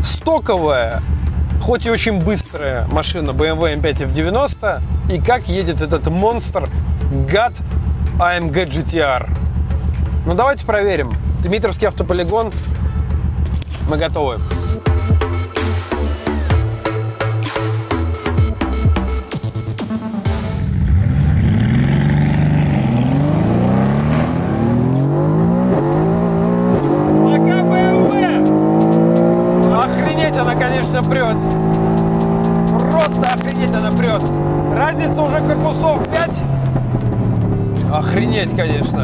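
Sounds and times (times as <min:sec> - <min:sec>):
car engine at full throttle: 0:20.2 - 0:39.0.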